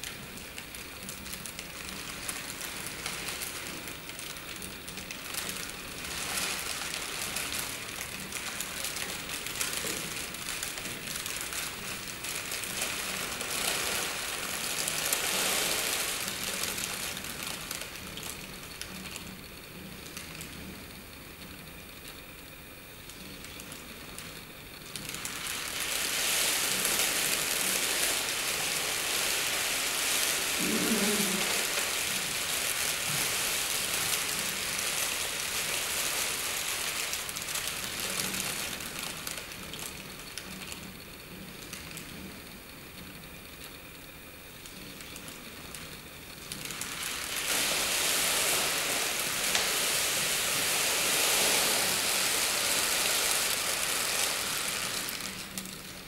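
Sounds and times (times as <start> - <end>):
crumpled paper crinkling: 24.9 - 40.8, 46.5 - 56.0.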